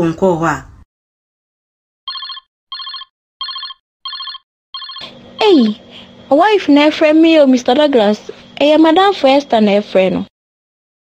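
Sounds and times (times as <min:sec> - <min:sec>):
mobile phone trilling ringtone: 0:02.1 - 0:05.1.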